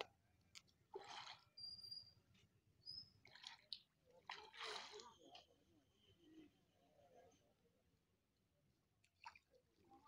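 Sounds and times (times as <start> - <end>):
fish splashing and thrashing: 0.8 - 1.6, 3.1 - 5.2.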